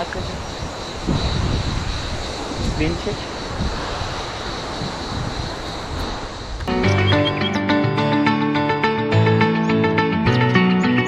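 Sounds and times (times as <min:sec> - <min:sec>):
background music with plucked guitar: 0:06.7 - 0:11.0.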